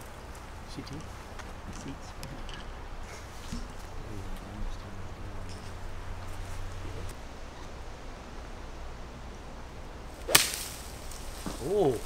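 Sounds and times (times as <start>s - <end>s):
golf club hitting ball: 10.2s - 10.9s.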